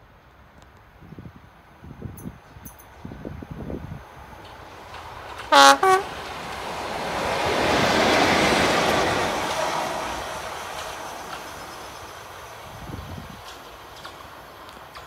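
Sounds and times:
locomotive passing on rails: 1.3s - 15.0s.

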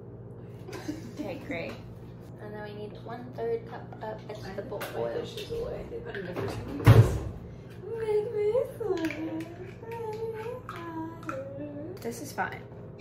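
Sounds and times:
young women's voices: 2.4s - 12.7s.

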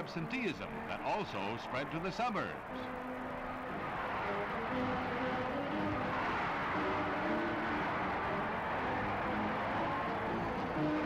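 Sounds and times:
crowd cheering and shouting: 1.2s - 11.0s.

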